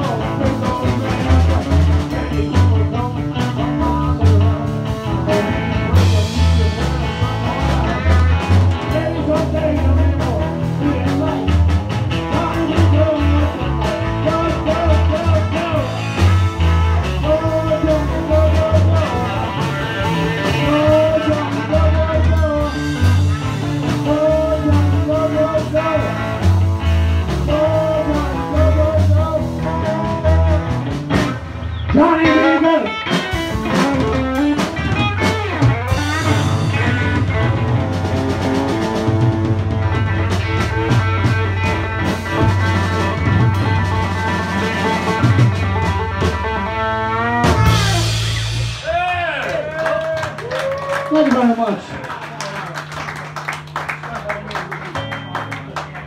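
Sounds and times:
drum kit: 0.0s - 51.1s
bass guitar: 0.0s - 56.0s
electric guitar: 0.0s - 56.0s.

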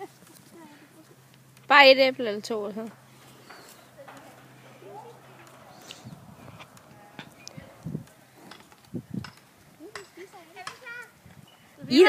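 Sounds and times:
faint voices murmuring: 3.1s - 8.7s.

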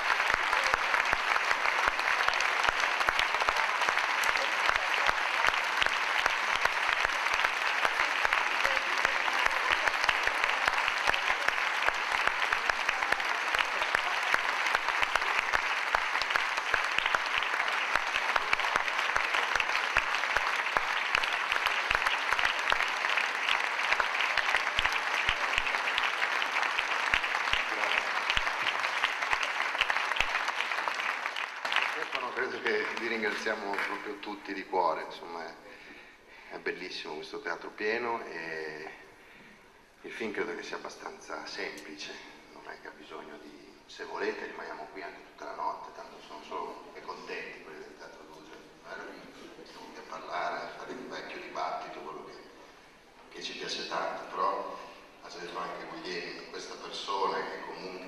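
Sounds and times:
audience applauding: 0.0s - 35.0s.

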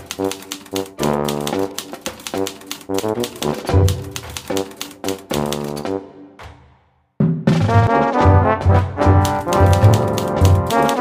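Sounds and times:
typewriter keys clacking: 0.0s - 5.9s, 9.2s - 11.0s
music with held notes: 7.7s - 11.0s.

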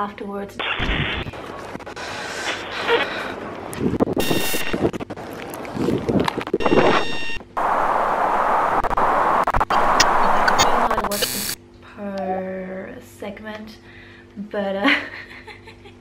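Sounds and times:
loud steady hiss: 4.2s - 4.8s, 6.6s - 11.6s
short buzzy electronic tones: 4.2s - 4.8s, 6.6s - 7.5s, 8.7s - 11.6s.

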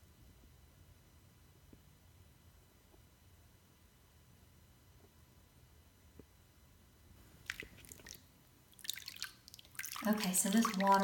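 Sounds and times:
bath water sloshing and splashing: 7.2s - 11.0s.

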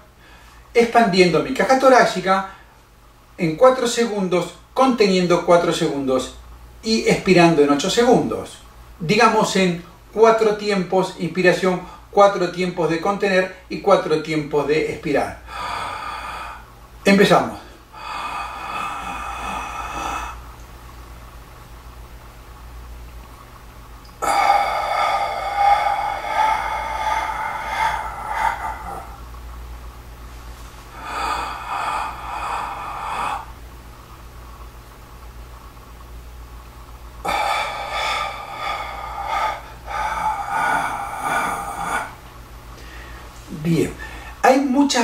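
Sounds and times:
man inhaling deeply: 15.5s - 16.7s, 17.7s - 20.5s, 24.2s - 29.3s, 30.6s - 33.6s, 37.2s - 43.4s, 44.0s - 44.4s.

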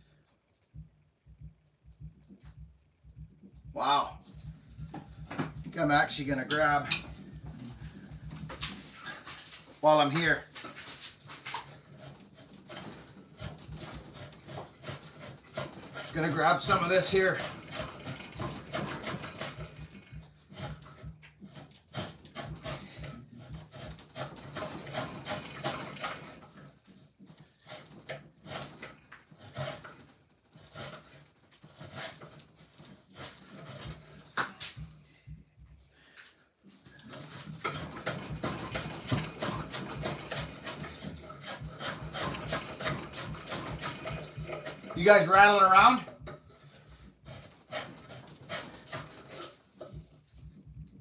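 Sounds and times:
hand shave cutting wood: 3.8s - 35.3s, 36.0s - 51.0s.

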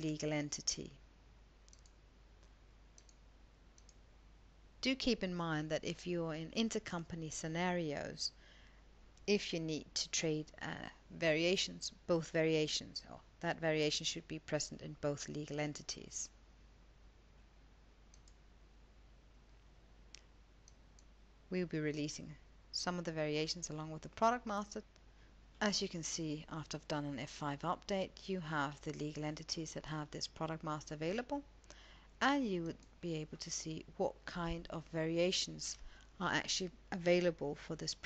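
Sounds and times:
computer mouse clicks: 1.6s - 3.2s, 3.8s - 4.0s, 18.1s - 18.4s, 20.1s - 21.1s.

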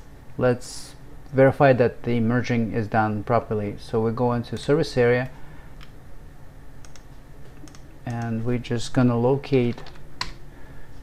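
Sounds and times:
faint room hiss: 0.0s - 11.0s
computer mouse clicks: 6.8s - 8.3s.

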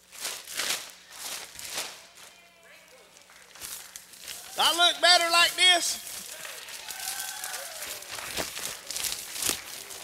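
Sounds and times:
plastic bag rustling and crinkling: 0.0s - 4.6s, 6.0s - 10.0s.

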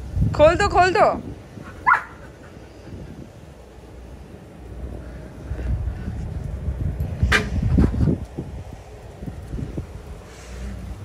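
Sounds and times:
dog high yip: 1.8s - 2.2s.

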